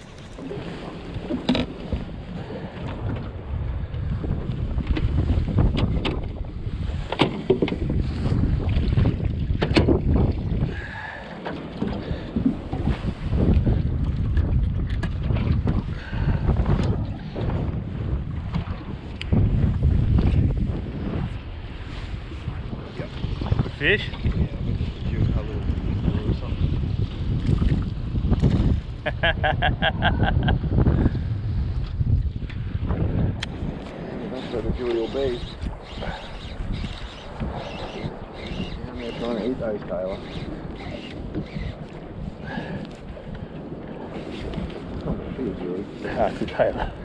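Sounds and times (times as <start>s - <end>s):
boat low rumble: 0.0s - 47.0s
wind rushing over microphone: 0.0s - 47.0s.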